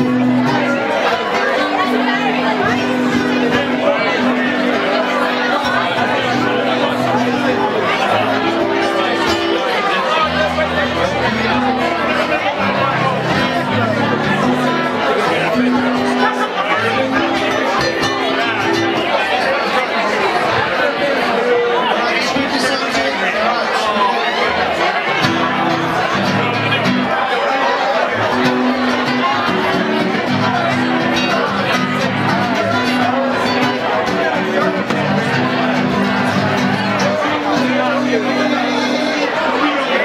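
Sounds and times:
acoustic guitar held notes: 0.0s - 40.0s
pub crowd chatter: 0.0s - 40.0s.

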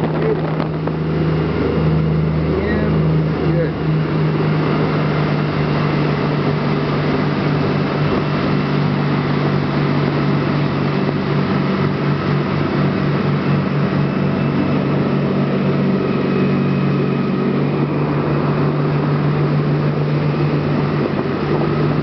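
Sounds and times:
boat engine drone: 0.0s - 22.0s
rushing boat wake: 0.0s - 22.0s.

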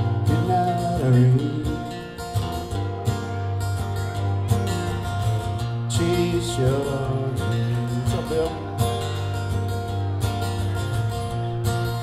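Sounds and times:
acoustic guitars strumming: 0.0s - 12.0s.

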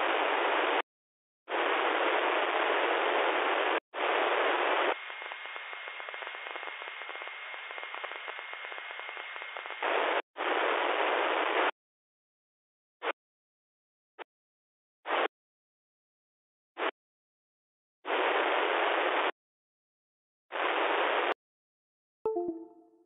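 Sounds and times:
radio receiver hiss: 1.5s - 11.7s.

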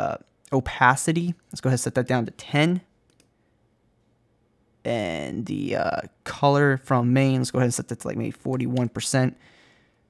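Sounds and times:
faint computer clicks: 3.0s - 3.4s.

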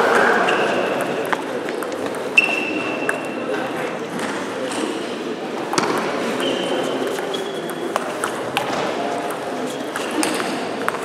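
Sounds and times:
murmur of voices: 0.0s - 11.0s
table tennis ball clicks: 0.9s - 3.3s, 5.7s - 11.0s.

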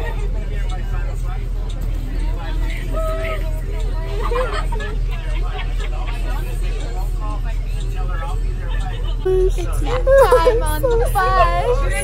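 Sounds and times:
bus engine rumbling: 0.0s - 12.0s
chatter of passengers: 0.0s - 12.0s.

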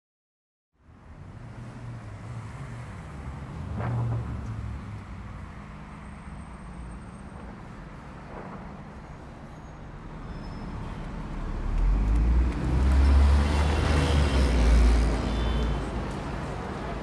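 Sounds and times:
low traffic hum: 0.8s - 17.0s.

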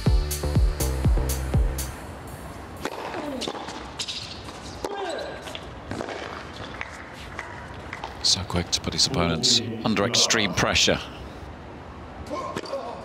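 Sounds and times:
racquet hitting tennis ball: 2.8s - 5.0s
shoe squeaks on court: 3.4s - 5.7s.

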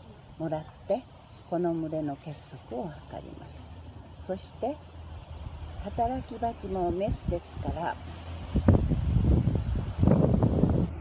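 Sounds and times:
wind buffeting microphone: 5.0s - 11.0s.

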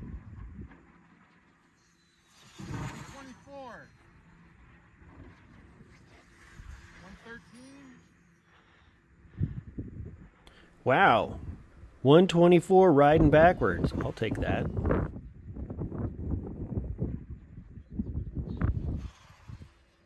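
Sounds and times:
wind rumble on microphone: 0.0s - 0.9s, 9.2s - 10.5s, 11.2s - 12.0s, 13.0s - 19.9s.

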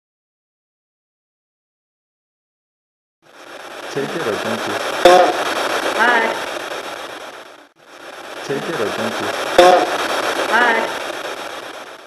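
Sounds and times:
recorder and room hiss: 3.2s - 12.0s.

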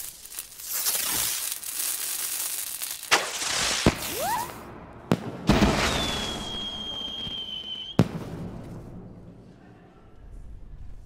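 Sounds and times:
crackling hiss: 0.0s - 4.6s
firework whistling: 0.0s - 4.7s, 5.5s - 8.1s
firework bang: 3.1s - 9.3s.

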